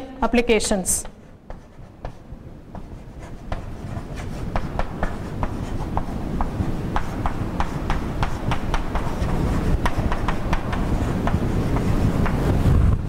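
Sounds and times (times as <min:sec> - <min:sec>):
low room rumble: 0:00.0 - 0:13.0
chalk scratching on blackboard: 0:01.0 - 0:12.6.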